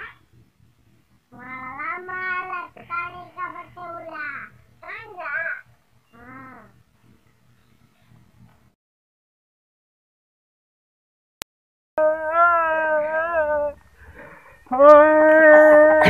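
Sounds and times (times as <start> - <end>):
boy wailing: 12.0 - 13.8, 14.7 - 16.0.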